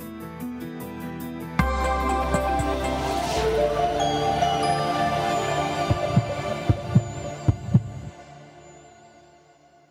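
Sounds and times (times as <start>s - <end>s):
heartbeat thumps: 5.9s - 8.1s.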